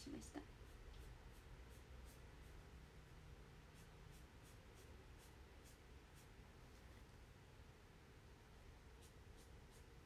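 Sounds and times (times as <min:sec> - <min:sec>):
low room hum: 0:00.0 - 0:10.0
soft drawing scratches: 0:00.5 - 0:02.8, 0:03.6 - 0:07.2, 0:08.9 - 0:10.0.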